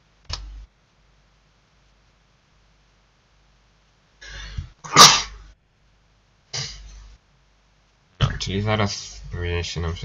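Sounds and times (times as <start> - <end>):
person sneezing: 4.2 - 5.4, 6.5 - 6.9.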